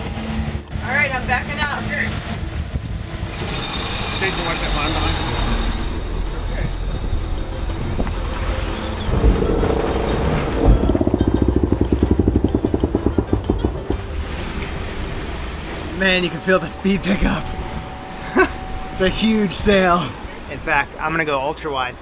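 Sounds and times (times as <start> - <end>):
wind and water rushing: 0.0 - 22.0
rapid flutter: 9.1 - 14.9.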